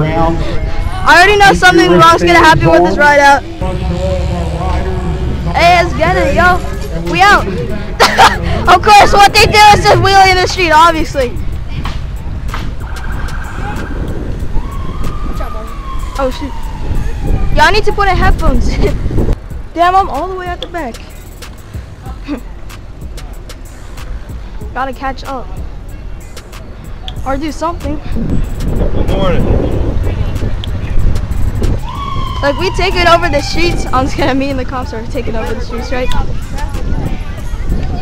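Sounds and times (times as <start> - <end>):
wind rumble on microphone: 0.0 - 21.0, 27.3 - 38.0
police siren wailing: 12.8 - 18.3, 31.8 - 34.4.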